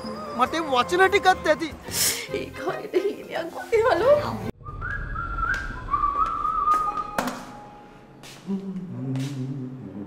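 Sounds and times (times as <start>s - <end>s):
person whistling a tune: 4.6s - 7.2s.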